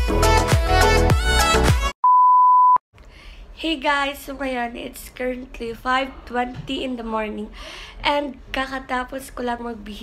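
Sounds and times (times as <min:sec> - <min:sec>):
high-pitched test tone beep: 0:02.0 - 0:02.8.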